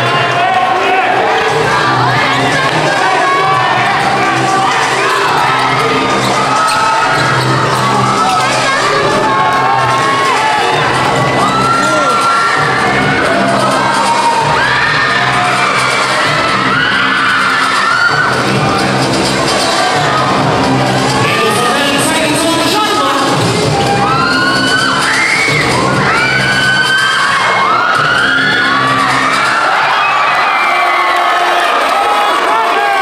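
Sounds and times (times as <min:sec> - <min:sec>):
crowd shouting and cheering: 0:00.0 - 0:33.0
music playing: 0:00.0 - 0:33.0.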